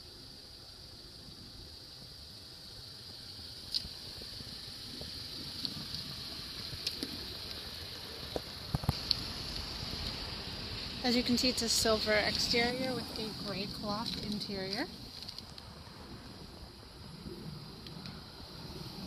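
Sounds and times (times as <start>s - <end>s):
microphone hiss: 0.0s - 19.0s.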